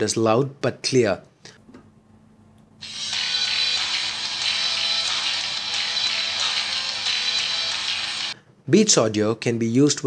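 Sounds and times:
pop song from phone loudspeaker: 0:02.8 - 0:08.4.

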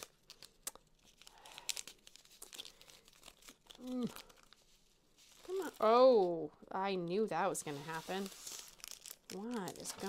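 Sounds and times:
plastic bag crinkling: 0:00.0 - 0:06.4, 0:07.6 - 0:10.0.

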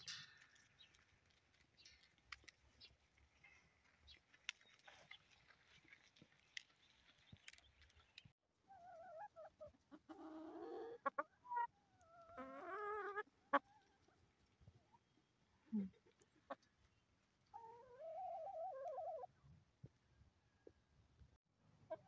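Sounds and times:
hens calling: 0:08.7 - 0:14.1.

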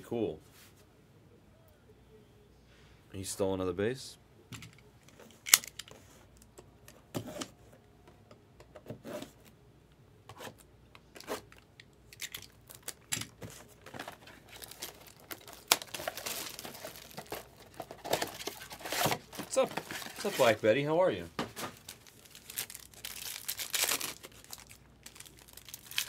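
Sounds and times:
card pack wrappers crinkling: 0:11.2 - 0:20.6, 0:21.6 - 0:26.0.

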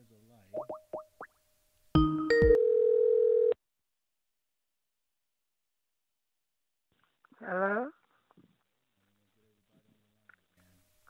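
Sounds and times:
steady telephone tone: 0:02.4 - 0:03.6.

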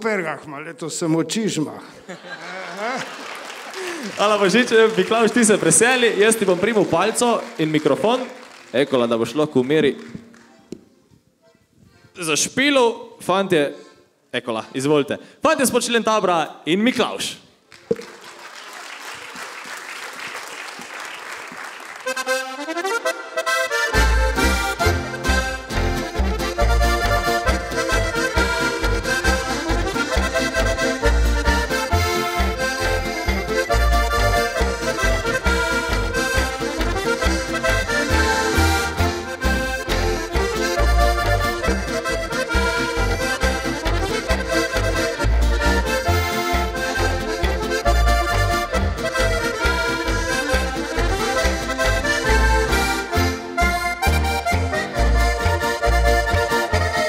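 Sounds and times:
accordion ensemble playing folk tune: 0:01.0 - 0:09.5, 0:10.1 - 0:12.6, 0:13.4 - 0:14.9, 0:22.0 - 0:57.0.

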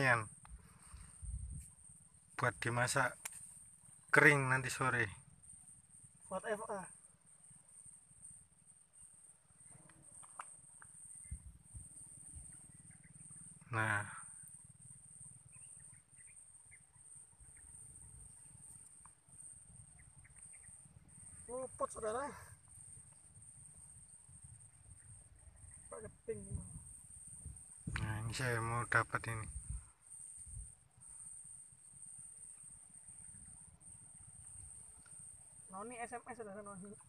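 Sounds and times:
faint bird chirps: 0:00.0 - 0:37.0
insect trill: 0:00.0 - 0:37.0
wind rumbling on microphone: 0:00.5 - 0:01.8, 0:11.2 - 0:12.5, 0:26.3 - 0:28.4, 0:29.4 - 0:30.7.

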